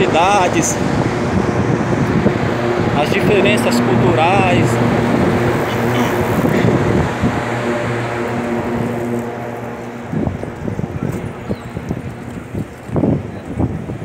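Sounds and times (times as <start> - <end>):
low-pitched hum: 0.0 - 14.0
street noise: 0.0 - 14.0.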